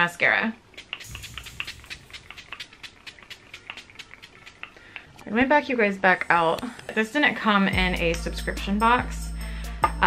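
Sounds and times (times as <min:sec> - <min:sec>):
spray bottle spritzing: 0:00.7 - 0:04.8.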